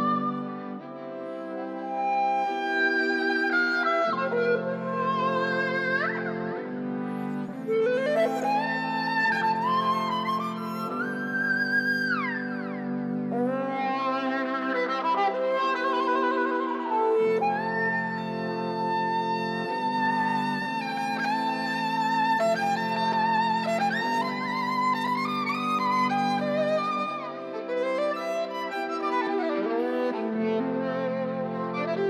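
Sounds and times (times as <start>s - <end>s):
electric violin melody: 0.0s - 32.0s.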